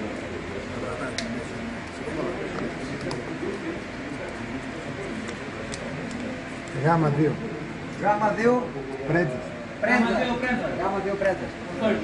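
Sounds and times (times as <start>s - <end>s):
murmur of men's voices: 0.0s - 12.0s.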